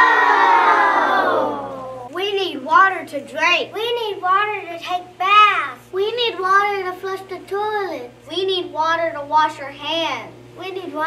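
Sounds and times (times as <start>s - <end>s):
children shouting together: 0.0s - 2.1s.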